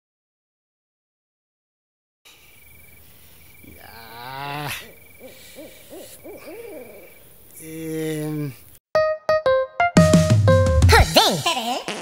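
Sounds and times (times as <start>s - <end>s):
high chirping insects: 2.3s - 8.8s
owl hooting: 2.4s - 8.8s.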